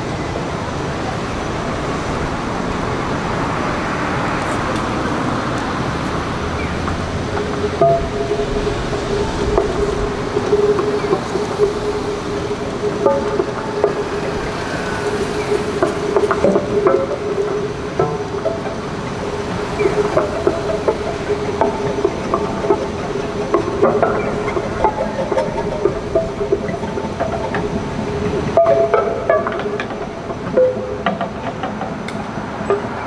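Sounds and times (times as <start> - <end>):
plucked guitar notes: 6.4 - 33.0
held string tone: 6.6 - 31.8.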